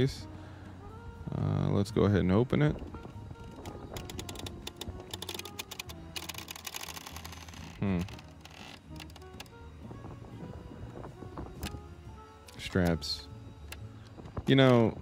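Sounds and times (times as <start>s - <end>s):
background music: 0.0s - 15.0s
rapid plastic clicks and rattles: 3.5s - 9.5s.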